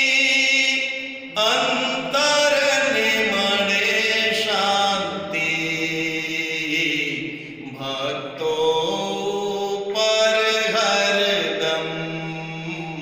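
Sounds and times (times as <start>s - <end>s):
devotional hymn chanting: 0.0s - 13.0s.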